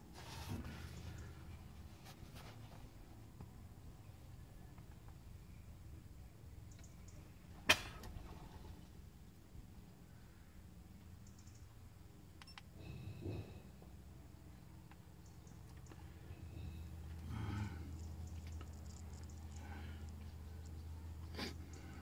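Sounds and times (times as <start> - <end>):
faint ticks: 11.2 - 11.7.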